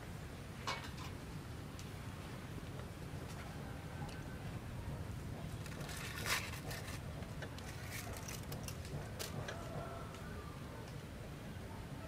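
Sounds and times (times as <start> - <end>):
aluminium foil crinkling: 5.6 - 7.0, 7.6 - 9.3.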